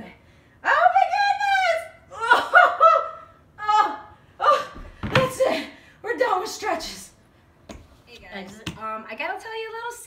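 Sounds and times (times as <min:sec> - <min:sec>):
woman laughing: 0:02.1 - 0:03.3.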